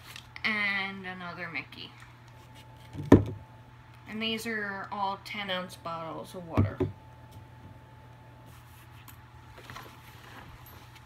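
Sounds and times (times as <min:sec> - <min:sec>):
steady low hum: 0:00.0 - 0:11.0
rustling in fabric bag: 0:08.5 - 0:11.0.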